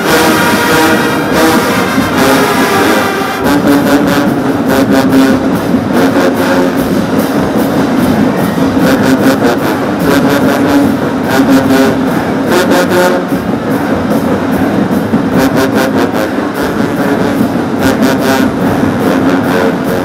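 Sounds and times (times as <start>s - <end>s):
drum and cymbal hits: 0.0s - 20.0s
marching band brass: 0.0s - 20.0s.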